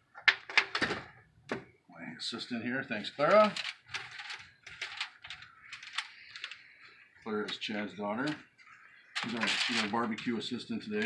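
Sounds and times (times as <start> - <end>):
aluminum foil crinkling: 3.2 - 6.6, 9.1 - 10.3.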